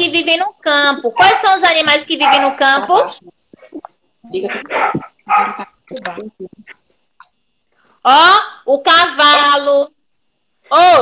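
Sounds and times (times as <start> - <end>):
dog barking: 1.2 - 1.6, 2.2 - 3.2, 4.7 - 5.7.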